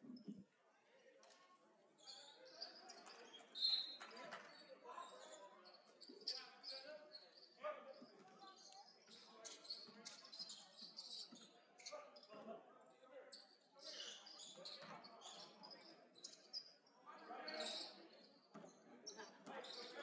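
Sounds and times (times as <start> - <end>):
sneakers squeaking: 8.2 - 12.3.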